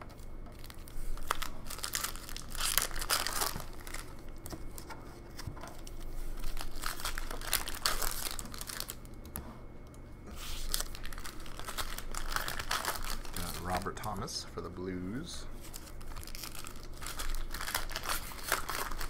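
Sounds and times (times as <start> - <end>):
card pack wrappers crinkling and tearing: 0.0 - 9.2, 10.3 - 19.0.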